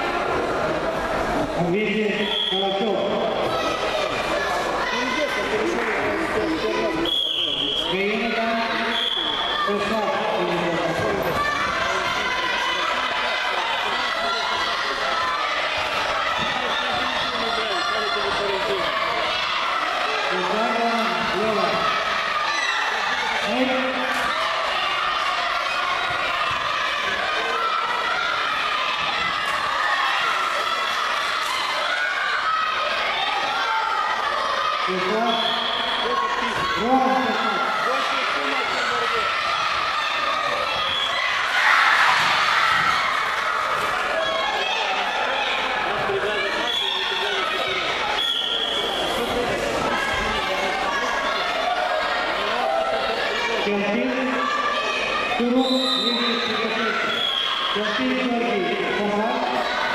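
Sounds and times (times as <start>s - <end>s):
crowd talking and shouting: 0.0s - 59.9s.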